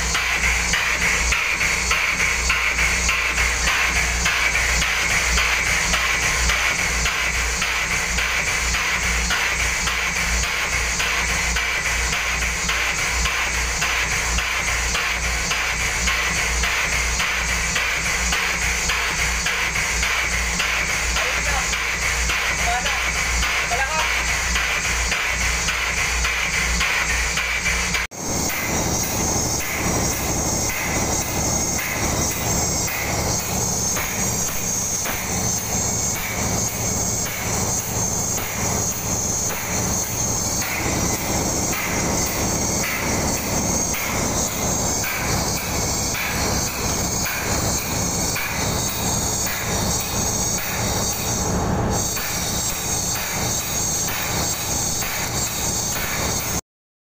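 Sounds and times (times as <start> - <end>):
diaphragm pump pulsing: 0.0 - 56.6.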